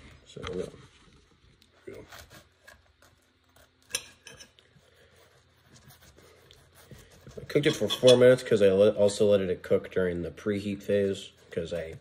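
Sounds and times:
knife cutting pizza crust: 1.9s - 8.2s
knife scraping on plate: 3.6s - 4.8s, 7.3s - 8.4s
knife clinking on plate: 7.7s - 8.4s.

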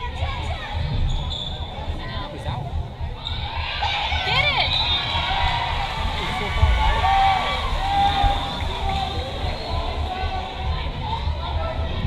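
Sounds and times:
chattering crowd: 0.0s - 12.0s
sneakers squeaking on gym floor: 0.9s - 1.8s.

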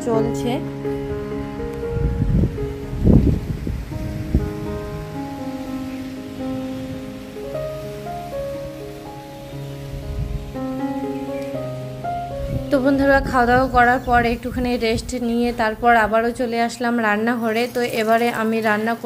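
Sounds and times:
wind rumbling on microphone: 0.0s - 17.7s
slow sustained music: 0.0s - 18.2s.

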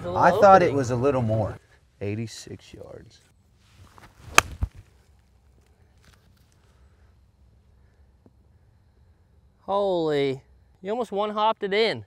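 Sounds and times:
golf club striking ball: 4.3s - 4.7s.

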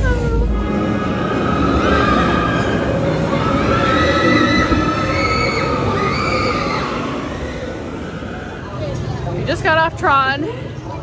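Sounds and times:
roller coaster train rushing past: 0.0s - 11.0s
riders screaming: 1.1s - 8.7s.

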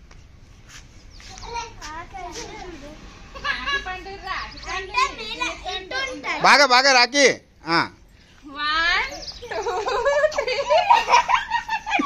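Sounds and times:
children talking and calling out: 1.1s - 6.9s, 8.4s - 11.3s.

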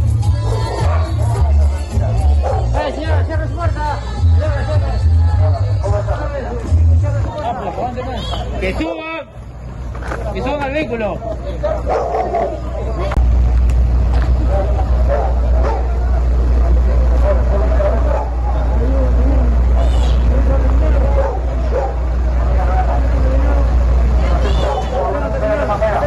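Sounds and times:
people talking and calling out: 0.0s - 26.0s
truck engine idling: 9.3s - 26.0s.

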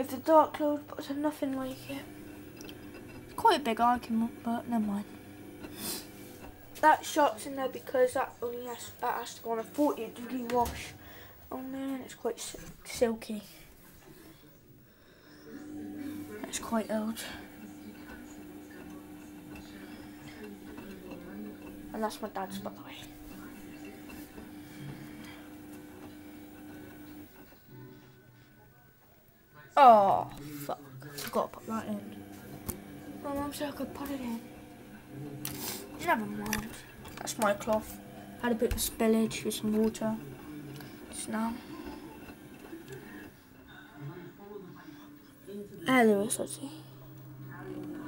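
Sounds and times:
washing machine humming: 0.0s - 13.6s, 15.2s - 28.4s, 29.8s - 48.0s.

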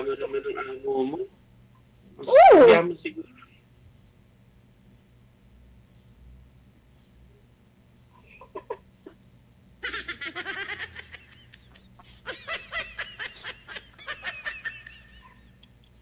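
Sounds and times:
people laughing: 9.8s - 16.0s.

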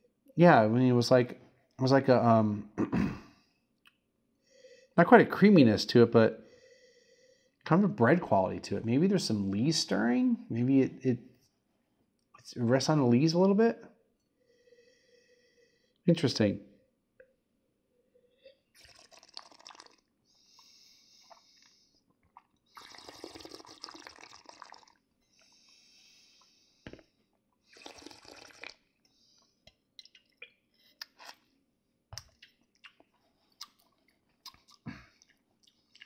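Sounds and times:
slurping wine through the mouth: 18.7s - 20.1s, 22.3s - 25.0s, 27.6s - 28.9s.

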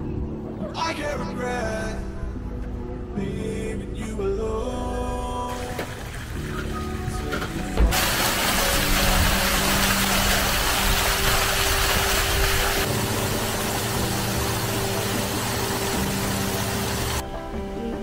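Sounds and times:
background music: 0.0s - 18.0s
fountain water splashing: 5.5s - 6.5s, 7.9s - 17.2s
water pouring down stone wall: 7.8s - 17.2s.

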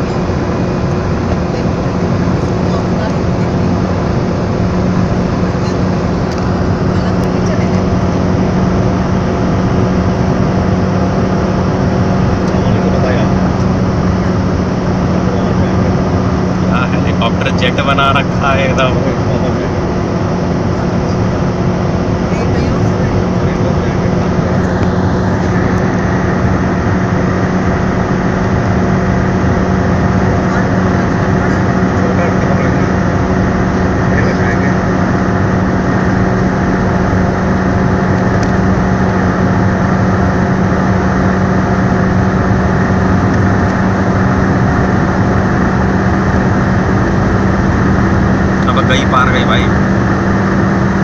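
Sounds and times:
car engine droning at high revs: 0.0s - 51.0s
road noise: 0.0s - 51.0s.

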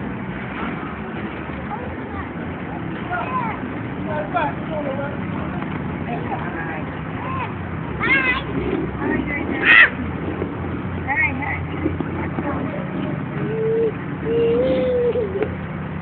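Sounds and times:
street traffic rumble: 0.0s - 16.0s
children squealing and calling: 9.6s - 10.0s, 13.4s - 15.6s.

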